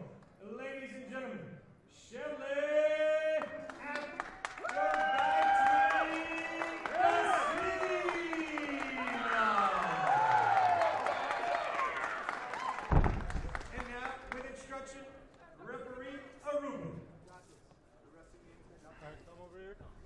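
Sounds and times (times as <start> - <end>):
crowd cheering and applause: 3.8 - 14.4.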